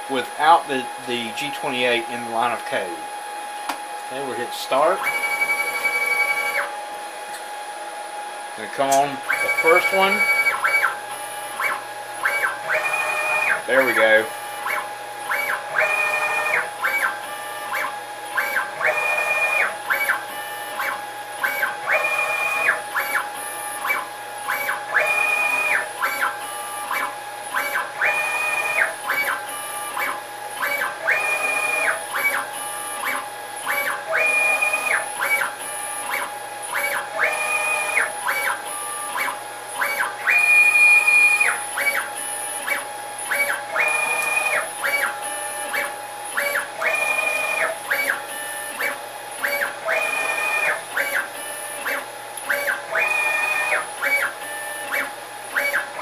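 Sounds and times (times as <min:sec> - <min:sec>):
stepper motors whining: 0:04.7 - 0:06.7, 0:08.6 - 0:56.0.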